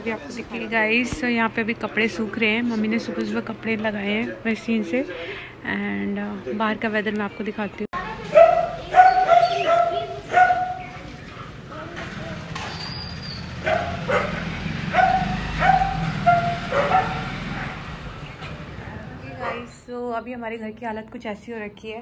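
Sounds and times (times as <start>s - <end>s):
dog barking in high yaps: 8.3s - 11.0s, 12.8s - 17.3s.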